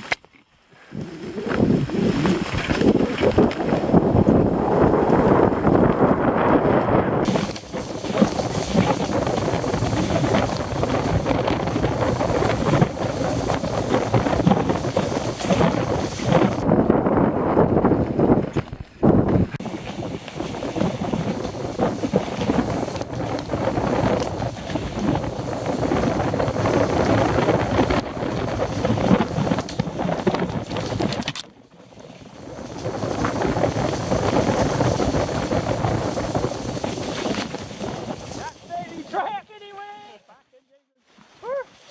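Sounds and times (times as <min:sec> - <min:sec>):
bike rattling over roots: 0:00.0 - 0:39.3
bike tyre noise: 0:00.0 - 0:39.4
wind buffeting microphone: 0:00.8 - 0:39.2.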